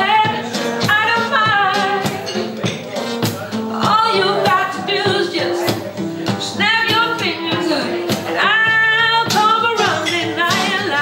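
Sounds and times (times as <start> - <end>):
woman singing soul ballad: 0.0 - 2.4, 3.7 - 5.8, 6.4 - 11.0
strummed acoustic guitar: 0.0 - 11.0.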